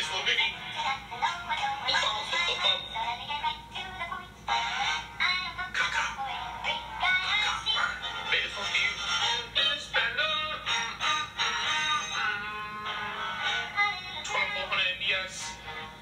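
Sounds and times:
rap song with auto-tuned vocals: 0:05.5 - 0:10.8, 0:14.1 - 0:15.8.

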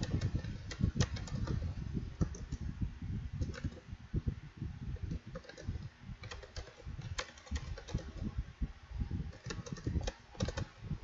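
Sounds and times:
keyboard typing clicks: 0:00.0 - 0:01.6, 0:03.4 - 0:03.8, 0:05.1 - 0:08.2, 0:09.3 - 0:10.8.

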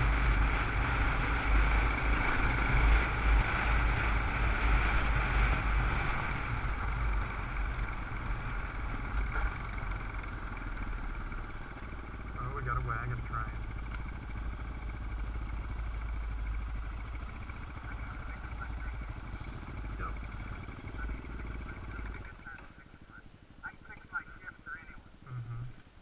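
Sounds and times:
dirt bike engine rumble: 0:00.0 - 0:26.0
faint voices: 0:19.8 - 0:25.8.

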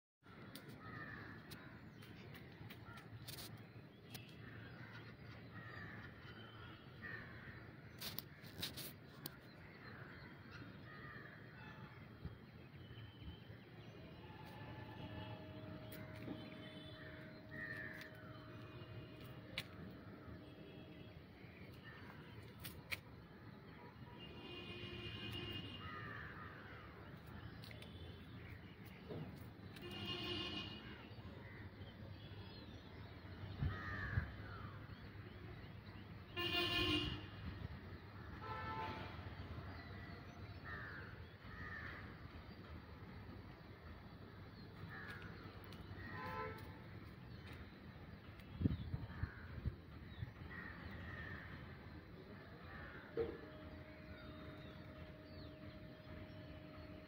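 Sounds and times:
vehicle horn toot: 0:14.5 - 0:19.6, 0:24.2 - 0:26.0, 0:29.8 - 0:31.1, 0:36.3 - 0:37.4, 0:38.4 - 0:39.2, 0:46.2 - 0:46.8.

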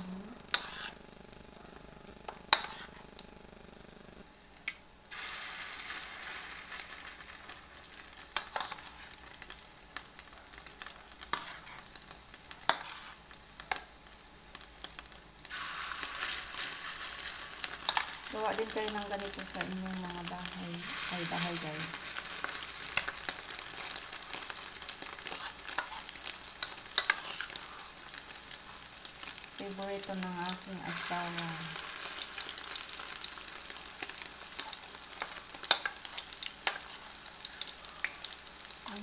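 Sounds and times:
oil sizzling in a frying pan: 0:00.0 - 0:39.0.

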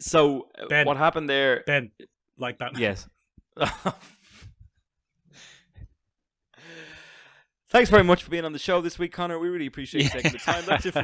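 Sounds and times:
man laughing breathily: 0:03.6 - 0:04.7
man sighing breath: 0:06.6 - 0:07.4.

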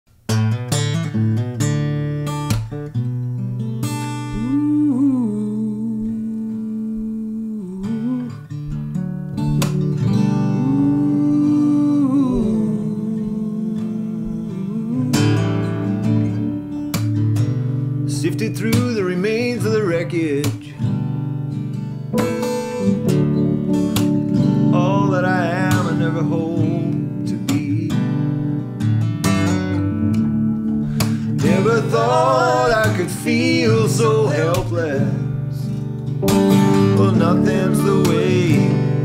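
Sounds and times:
acoustic guitar: 0:00.1 - 0:39.0
piano: 0:00.8 - 0:39.0
wordless vocal line: 0:04.4 - 0:08.5, 0:10.5 - 0:16.7, 0:30.9 - 0:35.7, 0:36.7 - 0:39.0.

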